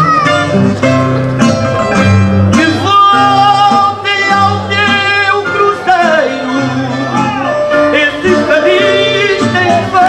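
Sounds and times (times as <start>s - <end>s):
plucked guitars: 0.0s - 10.0s
man singing with vibrato: 2.0s - 10.0s.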